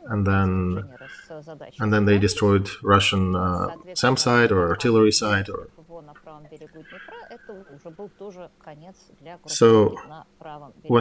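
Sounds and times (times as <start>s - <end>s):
woman talking faintly: 0.0s - 2.8s, 5.7s - 11.0s.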